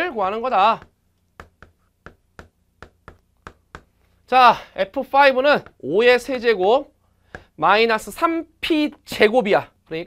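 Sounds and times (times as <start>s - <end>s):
chalk tapping on chalkboard: 0.4s - 4.1s, 5.5s - 5.8s, 7.3s - 7.6s.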